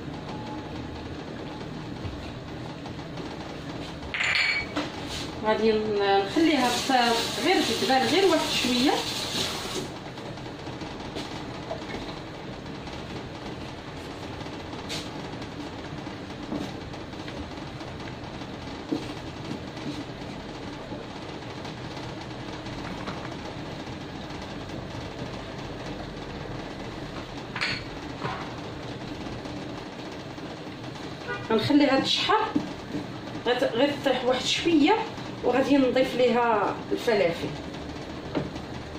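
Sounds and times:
onion sizzling in oil: 6.3s - 9.9s.

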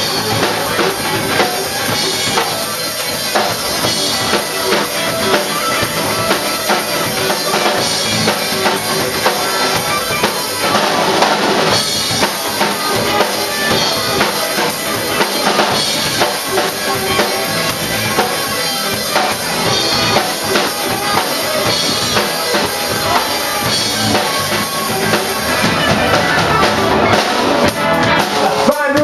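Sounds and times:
drum kit steady beat: 0.0s - 29.0s
live band playing: 0.0s - 29.0s.

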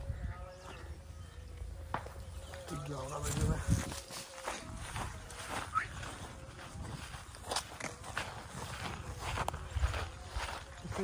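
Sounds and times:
footsteps on dirt and grass: 0.0s - 11.0s.

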